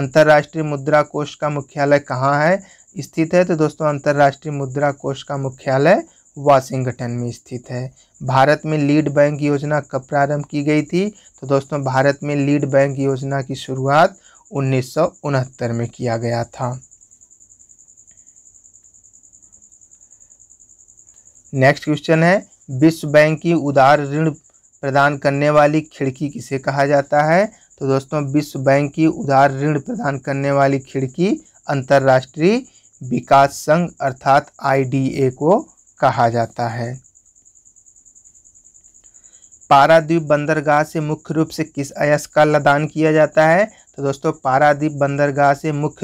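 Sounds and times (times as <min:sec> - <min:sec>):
cricket trilling: 0:00.0 - 0:46.0.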